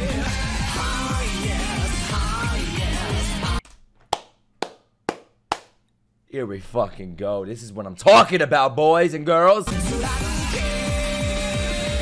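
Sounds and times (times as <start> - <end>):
man clapping hands: 3.7 - 5.8.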